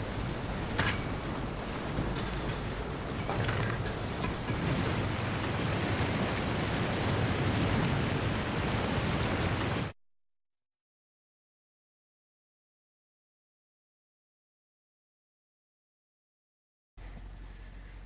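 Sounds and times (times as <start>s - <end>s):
water rushing over spillway: 0.0s - 10.0s.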